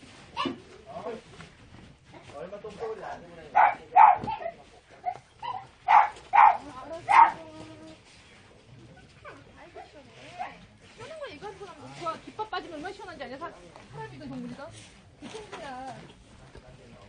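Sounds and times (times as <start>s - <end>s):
dog barking: 3.6s - 7.4s.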